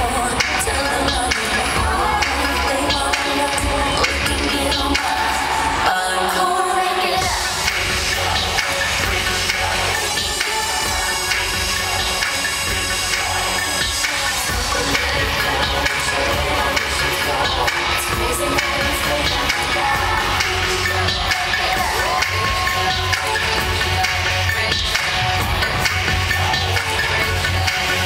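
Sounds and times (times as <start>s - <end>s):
live pop concert music: 0.0s - 28.0s
heavy bass line: 7.2s - 28.0s.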